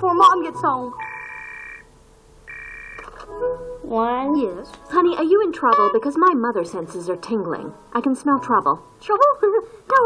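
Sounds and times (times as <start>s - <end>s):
electronic telephone ring: 1.0s - 1.9s, 2.5s - 3.2s.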